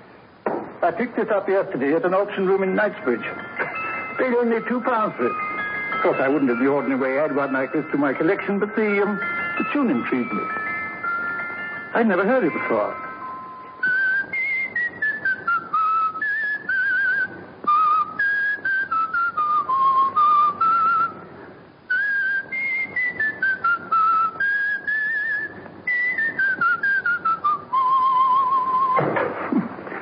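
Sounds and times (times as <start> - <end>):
person whistling a melody: 13.2 - 21.2, 21.9 - 29.0.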